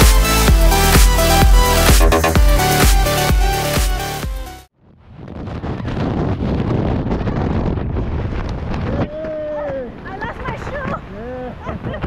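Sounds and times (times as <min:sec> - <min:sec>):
electronic dance music: 0:00.0 - 0:04.7
wind buffeting microphone: 0:04.9 - 0:12.0.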